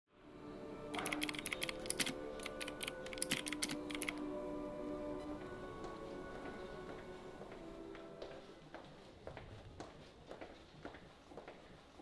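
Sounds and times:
soft musical drone: 0.2s - 8.7s
keyboard typing: 0.9s - 4.2s.

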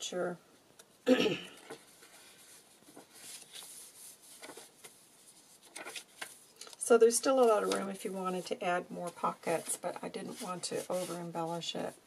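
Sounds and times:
paper page turning: 1.6s - 11.3s
paper brushing against paper: 1.7s - 6.5s, 7.3s - 12.0s.

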